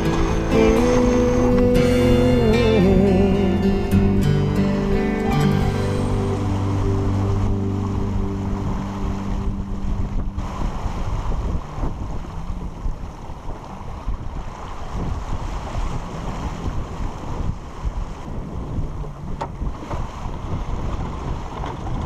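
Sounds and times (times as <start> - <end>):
water rushing along boat hull: 0.0 - 22.0
wind buffeting microphone: 0.0 - 22.0.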